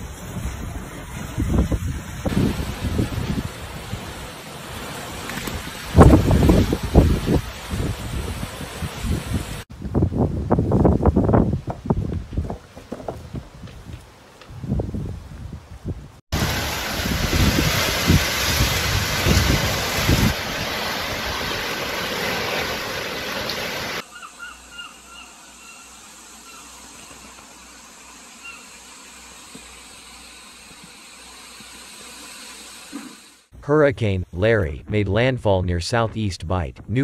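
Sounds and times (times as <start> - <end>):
wind gusting on microphone: 0.0 - 4.3, 5.2 - 22.4.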